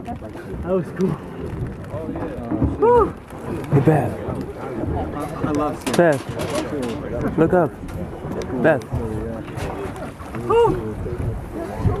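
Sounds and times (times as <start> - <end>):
boat and wind rumble: 0.0 - 12.0.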